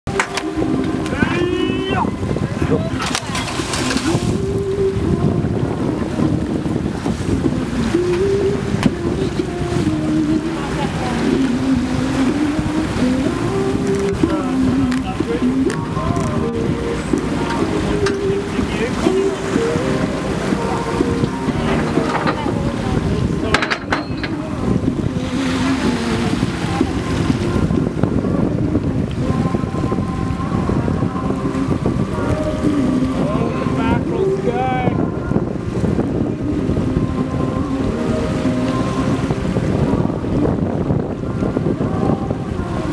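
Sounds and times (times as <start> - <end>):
boat engine running: 0.1 - 42.9
water slapping against hull: 0.1 - 42.9
wind on microphone: 0.1 - 42.9.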